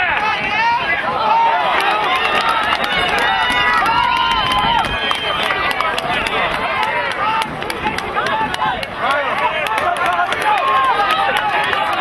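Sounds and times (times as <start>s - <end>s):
voices shouting and calling out: 0.0s - 12.0s.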